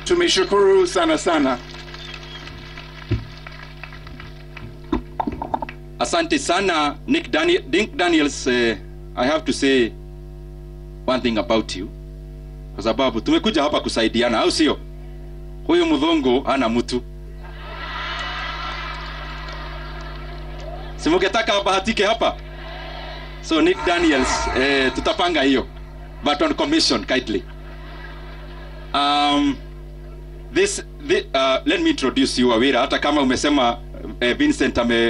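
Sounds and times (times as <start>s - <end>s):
low electrical hum: 0.0s - 35.0s
microphone stand thumps: 4.9s - 5.7s
crowd din: 23.6s - 26.2s.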